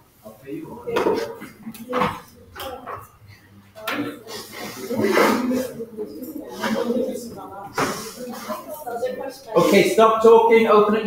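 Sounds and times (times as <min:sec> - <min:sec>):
people's voices: 0:00.4 - 0:11.0.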